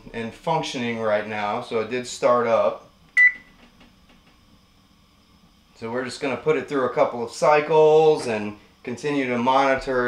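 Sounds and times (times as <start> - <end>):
short electronic beep: 3.2 - 3.5.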